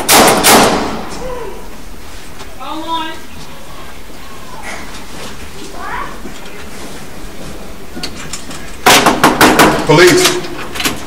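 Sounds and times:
knocking on a door: 0:08.9 - 0:09.9.

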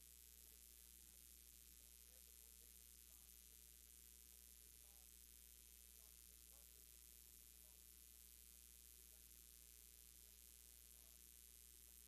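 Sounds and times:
faint hum with hiss: 0:00.0 - 0:12.0.

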